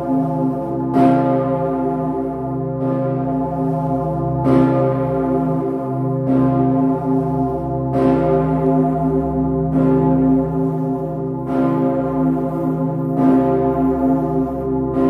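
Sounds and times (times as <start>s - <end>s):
deep bell hum: 0.0s - 15.0s
large bell ringing: 0.0s - 15.0s.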